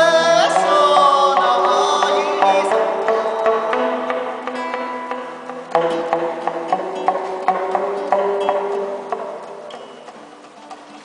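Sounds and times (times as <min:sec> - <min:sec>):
acoustic guitar plucked notes: 0:00.0 - 0:11.0.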